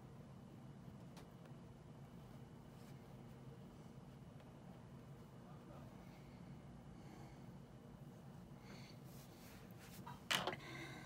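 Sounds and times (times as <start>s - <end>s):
faint room noise: 0.0s - 11.0s.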